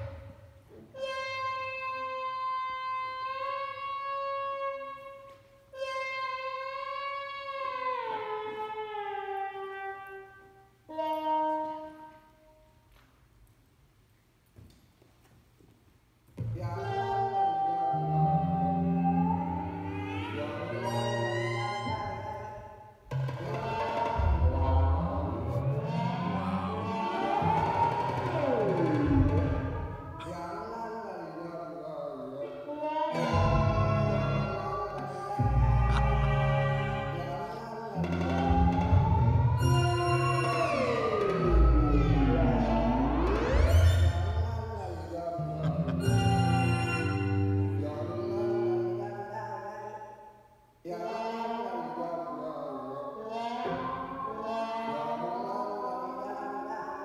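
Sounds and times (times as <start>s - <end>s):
deep bass notes: 23.1s - 30.0s, 33.3s - 37.4s, 38.0s - 48.0s
reedy synthesizer tones: 23.1s - 30.4s, 33.2s - 48.8s
high tone gliding down: 38.0s - 48.8s
electronic synthesizer music: 38.1s - 48.2s.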